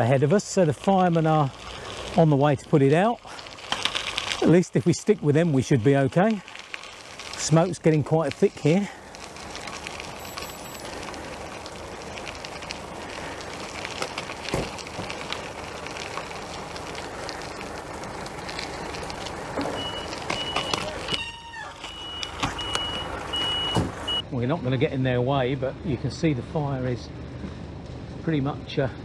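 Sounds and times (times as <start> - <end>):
vehicle noise: 0.0 - 29.0
reversing alarm beeps: 19.7 - 24.3.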